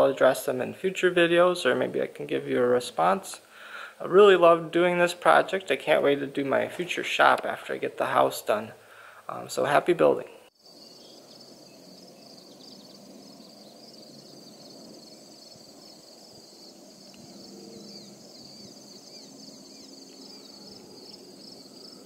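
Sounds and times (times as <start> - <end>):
crickets and insects chirping: 0.0 - 7.4, 10.5 - 22.0
soft low background noise: 0.0 - 22.0.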